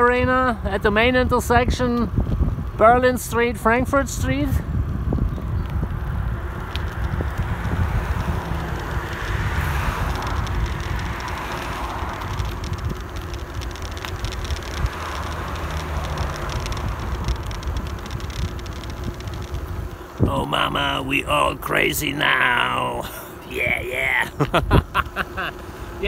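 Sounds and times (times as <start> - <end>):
wind rushing over microphone: 0.0 - 26.0
tyres rolling on asphalt: 4.8 - 21.0.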